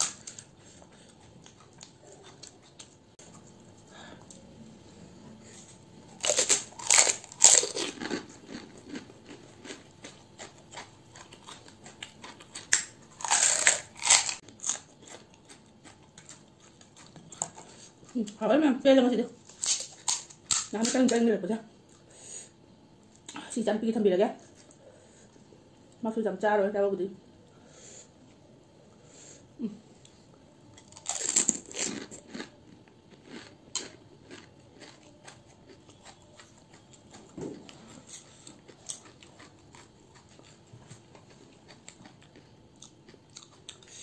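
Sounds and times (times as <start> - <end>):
crunching puffed shell being chewed: 0.0 - 4.4, 5.6 - 18.4, 19.4 - 21.2, 30.7 - 44.0
crisp shell crunching: 6.2 - 9.8, 12.5 - 15.1, 30.8 - 36.9.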